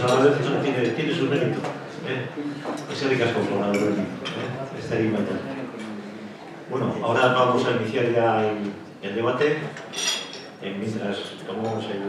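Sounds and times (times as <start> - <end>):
cutlery clinking on tableware: 9.7 - 10.6.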